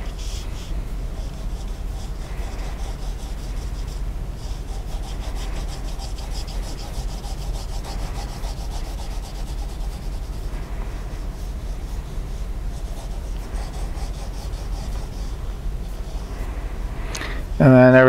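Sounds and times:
pencil scratching on paper: 0.0 - 16.6
steady low hum: 0.0 - 18.0.

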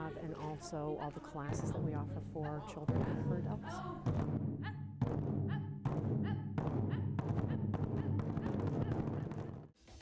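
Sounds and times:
taiko drums booming: 2.9 - 9.8.

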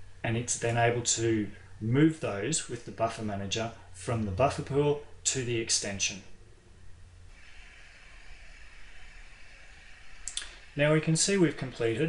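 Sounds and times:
faint low hum: 0.0 - 12.0
steady low hiss: 0.0 - 12.0.

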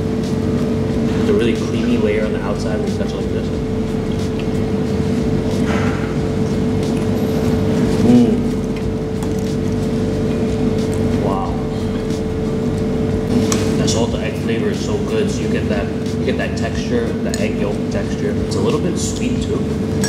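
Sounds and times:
steady mechanical hum: 0.0 - 20.0
man making mm sounds chewing: 6.5 - 9.9.

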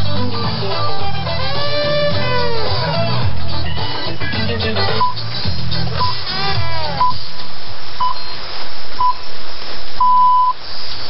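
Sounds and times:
music track: 0.0 - 8.2
radio receiver hiss: 4.1 - 11.0
time signal beeps: 7.0 - 7.2, 8.0 - 8.4, 9.0 - 9.2, 10.0 - 10.6.

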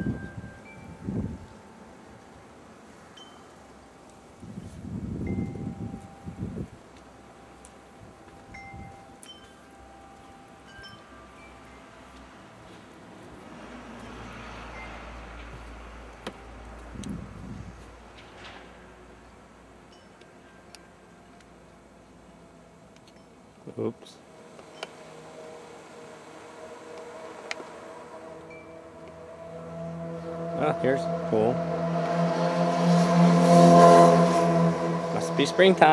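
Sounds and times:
wind chime ringing: 0.0 - 2.2, 3.1 - 12.1, 19.9 - 20.2, 28.4 - 28.9.

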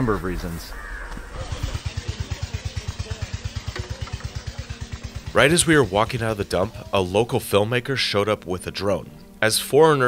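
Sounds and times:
small motorcycle engine idling: 1.2 - 7.4.

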